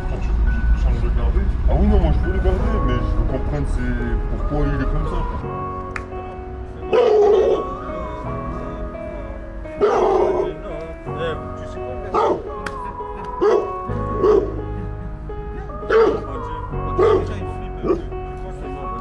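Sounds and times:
background music: 0:00.0 - 0:19.0
dog barking: 0:06.9 - 0:07.7, 0:09.8 - 0:10.5, 0:12.1 - 0:12.4, 0:13.4 - 0:14.6, 0:15.9 - 0:16.3, 0:17.0 - 0:18.1.

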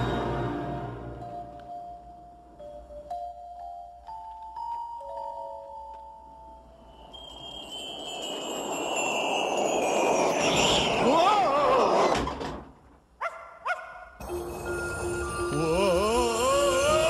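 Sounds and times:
rushing wind with whistling tones: 0:06.7 - 0:12.5
wavering yell: 0:15.5 - 0:17.0.

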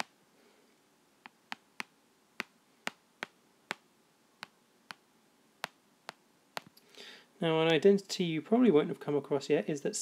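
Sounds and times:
stylus tapping on tablet screen: 0:01.2 - 0:06.8.

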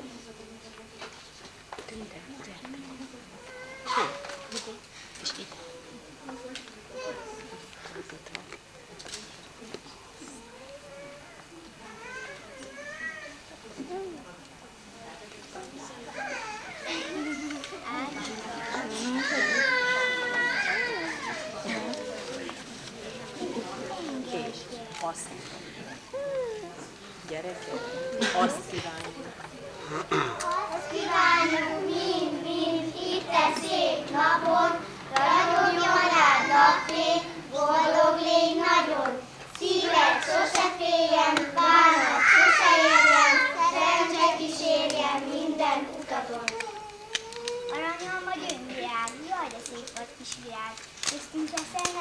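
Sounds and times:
murmur of voices: 0:00.0 - 0:52.0
toddler whimpering and fussing: 0:03.4 - 0:04.6, 0:25.9 - 0:26.9, 0:46.5 - 0:47.8
children singing in unison: 0:30.7 - 0:46.5.

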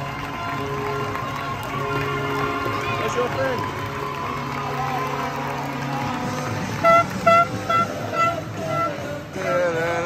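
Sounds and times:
arena music: 0:00.0 - 0:10.0
crowd noise: 0:00.0 - 0:10.0
plastic horn toots: 0:06.8 - 0:09.1.

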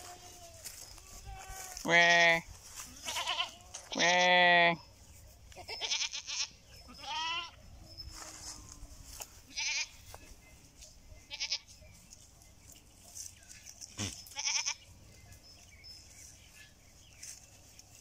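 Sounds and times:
goats bleating: 0:00.0 - 0:04.8, 0:05.5 - 0:07.6, 0:09.5 - 0:10.2, 0:11.3 - 0:11.8, 0:13.8 - 0:14.8.

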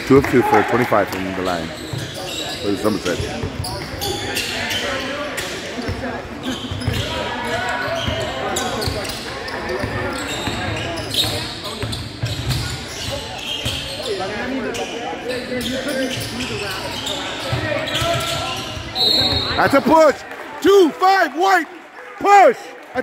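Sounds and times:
background voices in a gymnasium: 0:00.0 - 0:23.0.

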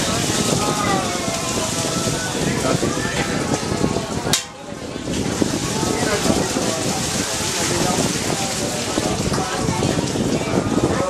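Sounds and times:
water pouring into metal basin: 0:00.0 - 0:11.0
water splashing: 0:00.0 - 0:11.0.

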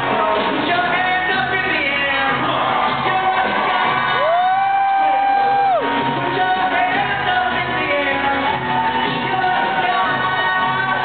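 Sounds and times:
live pop-rock band: 0:00.0 - 0:11.0.

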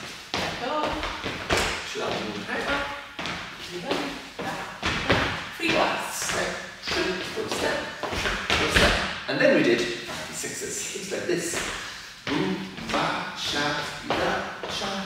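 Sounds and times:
dance shoes tapping on wooden floor: 0:00.3 - 0:09.1.

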